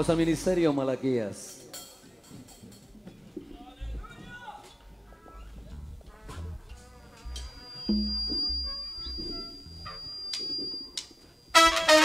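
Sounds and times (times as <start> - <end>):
live band with trumpets: 5.0 - 10.2, 11.5 - 12.0.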